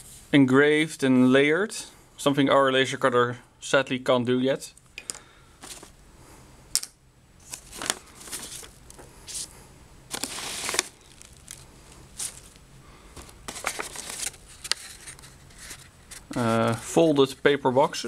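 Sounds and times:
paper rustling and crinkling: 5.6 - 6.0, 7.4 - 9.5, 10.1 - 17.4.

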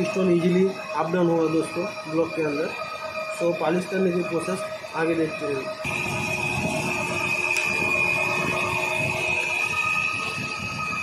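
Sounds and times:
honing machine whine: 0.0 - 11.0
mechanical rumble: 5.8 - 11.0.

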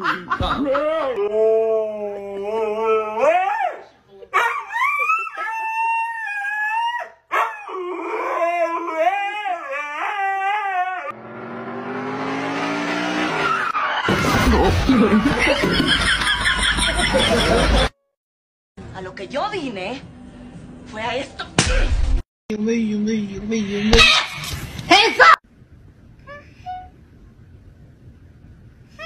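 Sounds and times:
dog howling: 1.2 - 11.2.

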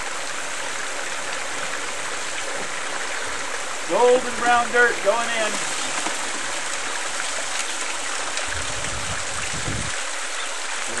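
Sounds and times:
water pouring and splashing: 0.0 - 11.0.

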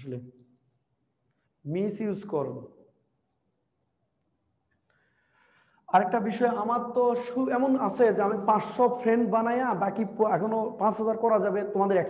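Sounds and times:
man speaking: 0.0 - 0.4, 1.6 - 2.8, 5.9 - 12.0.

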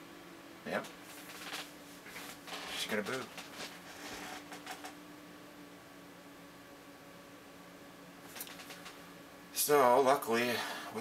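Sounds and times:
computer fans humming: 0.0 - 11.0.

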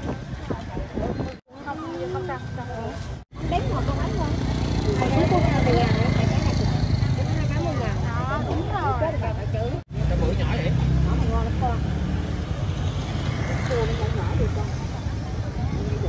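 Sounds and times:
voices chattering: 0.0 - 16.0.

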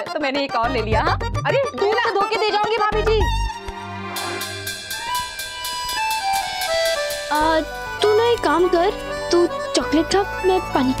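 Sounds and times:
light ticking beat: 0.0 - 11.0
melody of held notes: 3.4 - 11.0.

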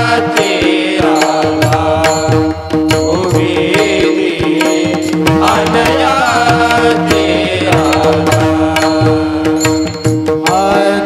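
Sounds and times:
devotional singing: 0.0 - 11.0
tabla strokes: 0.0 - 11.0
small hand cymbals: 7.1 - 10.6.

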